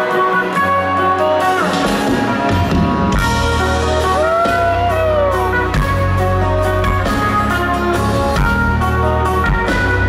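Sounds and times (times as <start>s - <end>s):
electric guitar melody: 0.0s - 10.0s.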